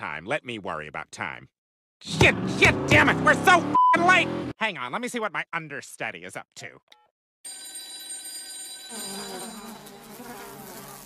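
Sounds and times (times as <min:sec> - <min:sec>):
thin high tones: 0:07.5 - 0:10.2.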